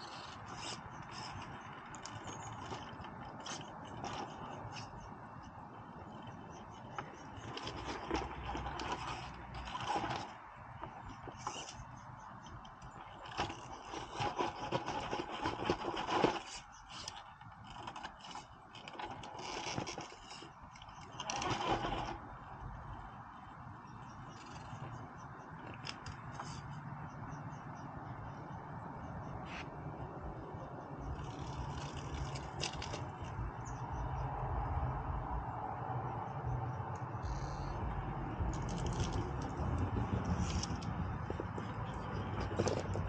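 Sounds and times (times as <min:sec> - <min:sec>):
toy motor whirring: 0:00.0 - 0:23.4, 0:31.0 - 0:33.9, 0:37.2 - 0:43.0
tyres scraping on rock: 0:00.0 - 0:26.8, 0:31.0 - 0:33.8, 0:38.3 - 0:43.0.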